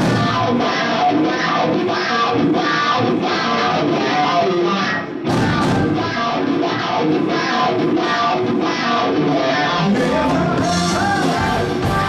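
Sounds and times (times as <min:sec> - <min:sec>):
bass guitar: 0:00.0 - 0:12.0
electric guitar: 0:00.0 - 0:12.0
drum kit beat with cymbals: 0:05.2 - 0:06.0, 0:10.0 - 0:12.0.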